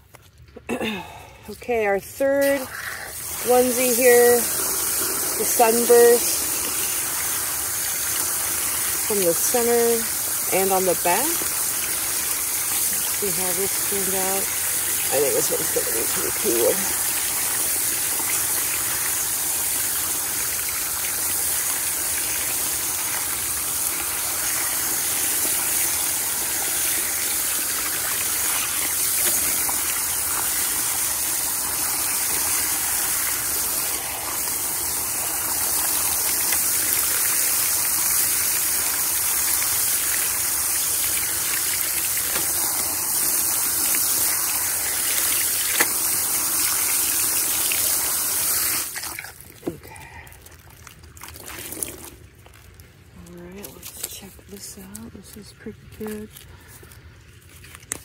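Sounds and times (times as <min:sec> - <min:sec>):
hose water spraying and splashing: 0:01.6 - 0:52.8.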